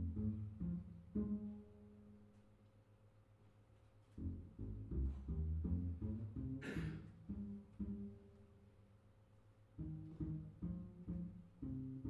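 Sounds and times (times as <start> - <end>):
double bass plucked notes: 0.0 - 2.2, 4.2 - 8.5, 9.8 - 12.0.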